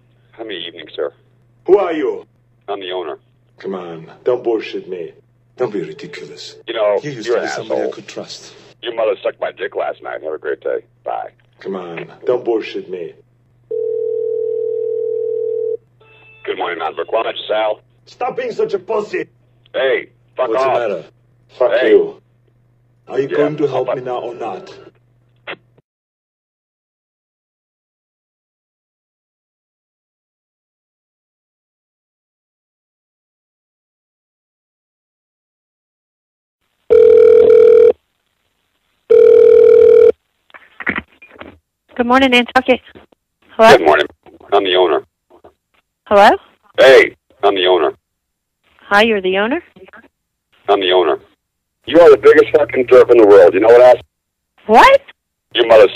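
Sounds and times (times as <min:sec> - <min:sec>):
telephone dial tone: 0:13.7 - 0:16.2, 0:36.9 - 0:38.0, 0:39.1 - 0:40.2.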